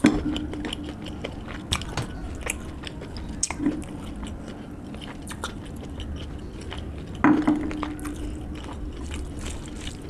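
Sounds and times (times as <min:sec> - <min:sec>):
wet mouth clicks and smacks: 0:00.0 - 0:04.3, 0:05.0 - 0:06.5
person chewing food: 0:00.0 - 0:10.0.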